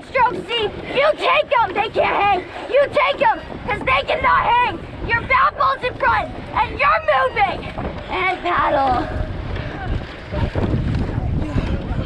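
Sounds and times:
faint voices: 0.0s - 12.0s
water washing along boat hull: 0.0s - 12.0s
wind rumbling on microphone: 0.0s - 12.0s.

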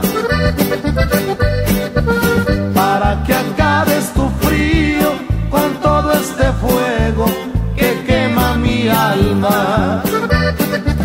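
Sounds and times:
bass and rhythm guitar: 0.0s - 11.0s
button accordion melody: 0.0s - 11.0s.

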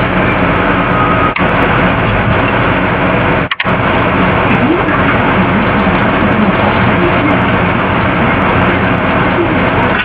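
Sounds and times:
loud dense noise: 0.0s - 10.0s.

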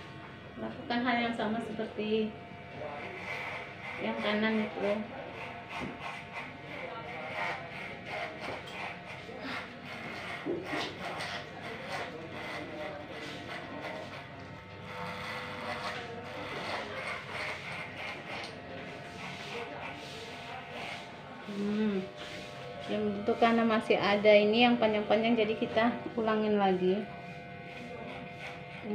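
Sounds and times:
electric hair clipper cutting hair: 0.0s - 28.9s.

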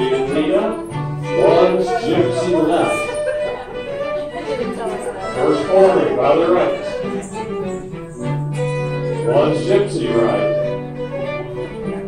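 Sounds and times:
dance band playing: 0.0s - 12.0s.

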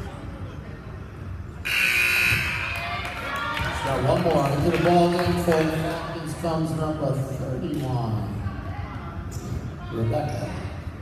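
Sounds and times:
scoreboard buzzer: 1.7s - 2.8s.

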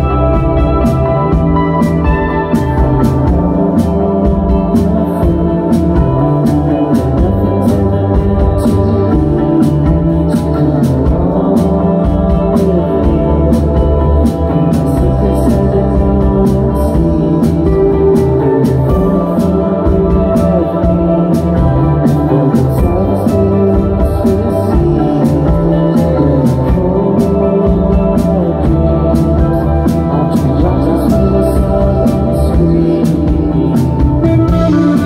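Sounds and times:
rock band playing live: 0.0s - 35.0s.

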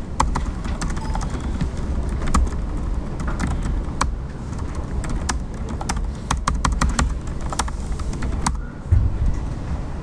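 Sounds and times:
steady low hum: 0.0s - 10.0s
keyboard typing: 0.2s - 8.6s.

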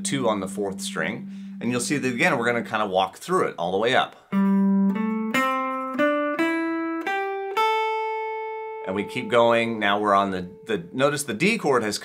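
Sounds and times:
electric guitar single notes: 0.0s - 3.1s, 4.3s - 11.6s.

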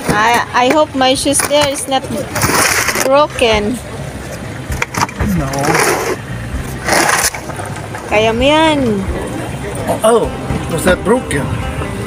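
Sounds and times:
suitcase scraping in car boot: 4.7s - 8.1s.

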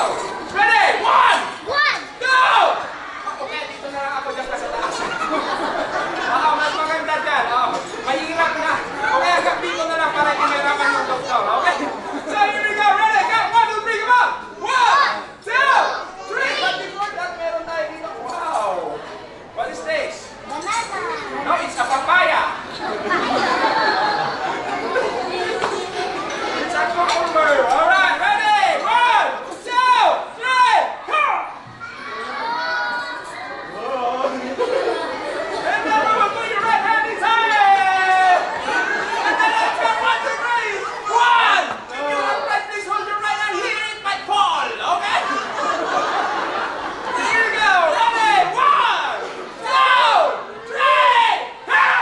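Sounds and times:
loud overlapping chatter: 0.0s - 52.0s.

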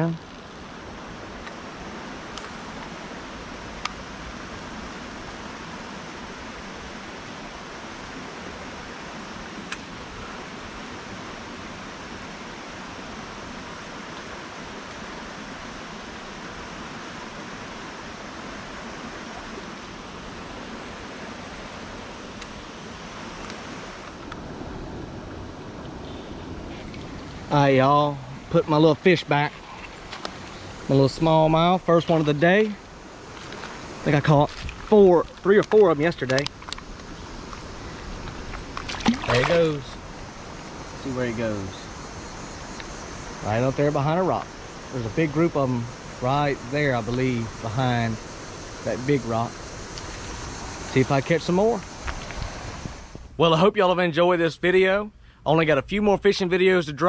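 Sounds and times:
creek water rushing over rocks: 0.0s - 53.1s.

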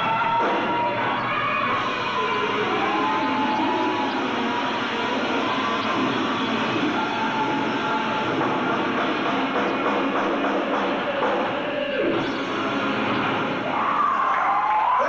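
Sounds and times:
hard rock band playing loudly: 0.0s - 14.0s.

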